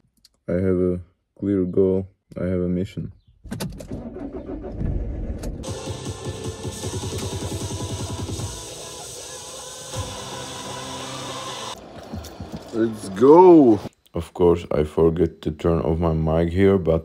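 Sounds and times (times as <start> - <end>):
van engine starting and idling: 3.8 - 9.2
music: 5.6 - 11.8.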